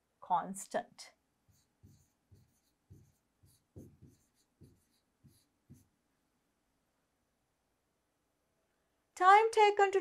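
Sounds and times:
stylus tapping and scraping screen: 1.4s - 5.9s.

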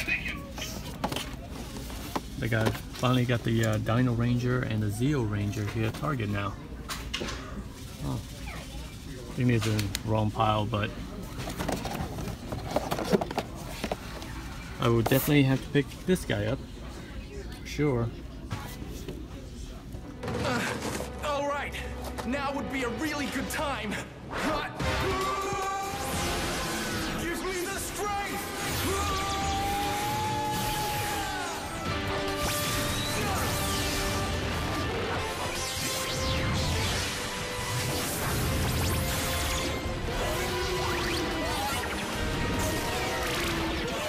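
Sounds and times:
boxed toys clicking and knocking: 11.4s - 14.2s.

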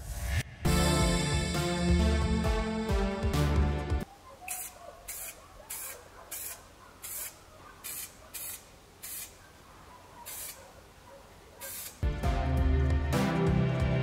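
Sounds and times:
aerosol spray can hissing: 4.5s - 9.4s, 10.3s - 10.6s, 11.7s - 12.0s.

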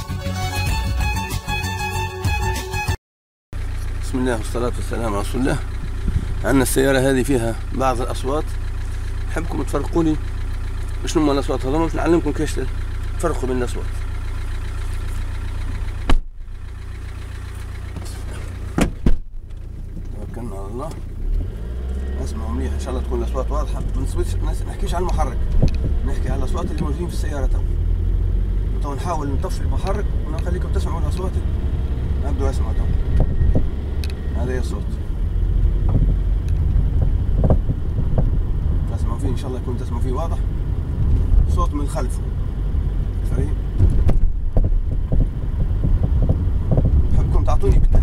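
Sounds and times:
car engine idling: 3.6s - 48.0s
tyre and road rumble: 3.6s - 48.0s
short knocks from car rear: 16.0s - 16.4s, 17.9s - 20.1s, 43.8s - 45.2s.

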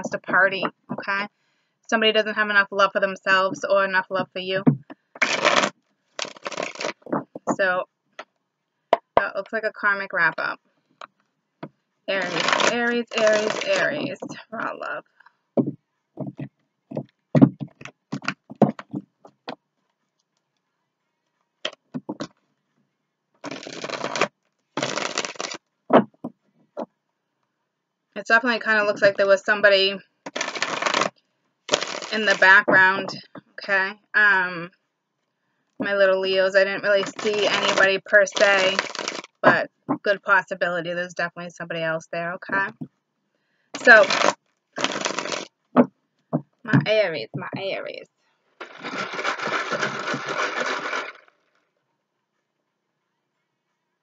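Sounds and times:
cards being shuffled: 5.2s - 7.5s, 12.2s - 14.2s, 23.4s - 26.1s, 30.3s - 31.1s, 31.7s - 32.4s, 37.1s - 39.4s, 43.8s - 45.5s, 48.6s - 51.3s.

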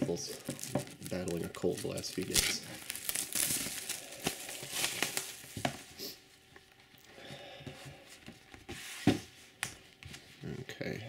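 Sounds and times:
plastic wrap crinkling: 0.0s - 7.1s.

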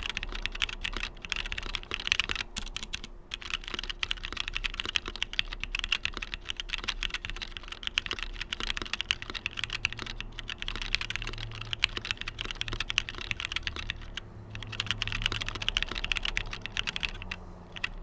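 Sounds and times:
mechanical keyboard typing: 0.0s - 18.0s.

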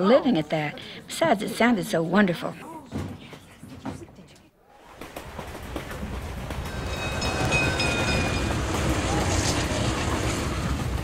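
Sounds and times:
train rumble inside carriage: 5.9s - 11.0s.

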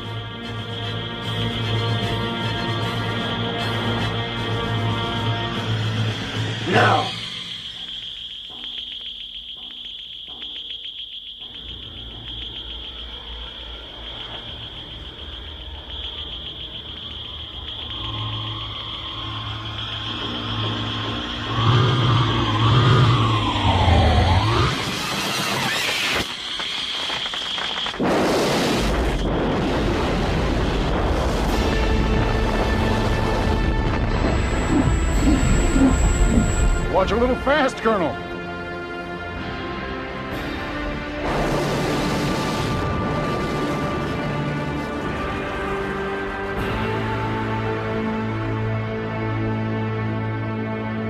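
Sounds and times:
dramatic music: 0.0s - 25.8s, 28.1s - 51.0s
high electronic whine: 5.6s - 37.6s
loud blasts: 24.4s - 36.0s
explosion noise: 28.0s - 35.6s.

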